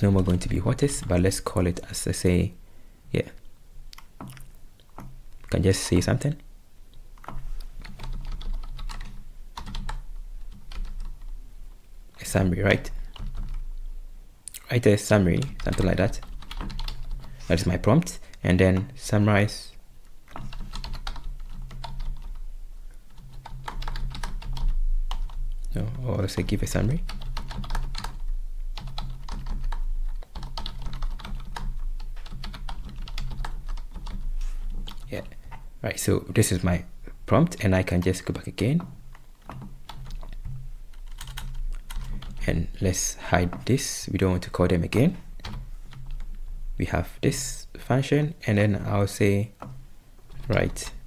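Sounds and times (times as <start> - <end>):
typing on computer keyboard: 7.2 - 11.3, 12.8 - 13.6, 15.4 - 17.4, 20.3 - 22.4, 23.1 - 25.4, 26.4 - 35.1, 38.8 - 42.4, 45.4 - 46.3.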